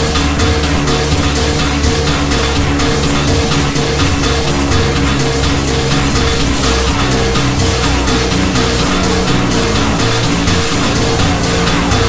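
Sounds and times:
electronic pop instrumental: 0.0 - 12.0.

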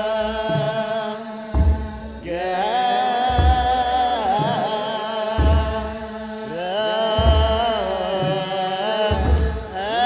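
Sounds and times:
choir chanting: 0.0 - 10.0.

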